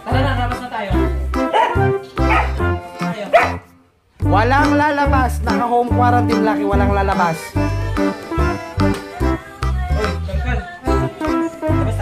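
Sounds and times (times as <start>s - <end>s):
background music with bass line: 0.0s - 12.0s
dog barking: 1.5s - 2.7s, 3.3s - 3.7s.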